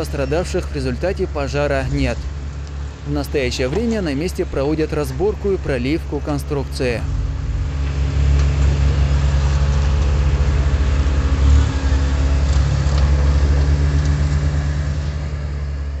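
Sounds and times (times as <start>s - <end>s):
heavy engine rumbling: 0.0s - 16.0s.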